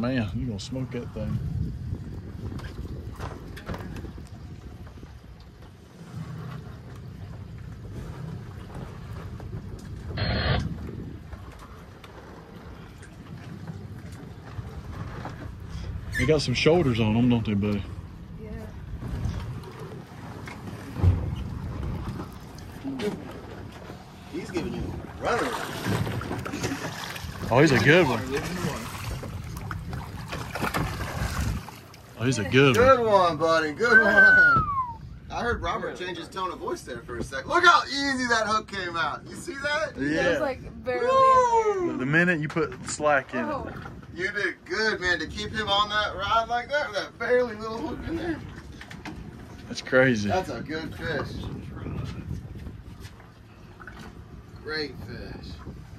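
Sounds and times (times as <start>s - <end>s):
boat engine running: 0.0s - 37.3s
wind buffeting microphone: 0.0s - 55.9s
water splashes: 2.4s - 35.0s.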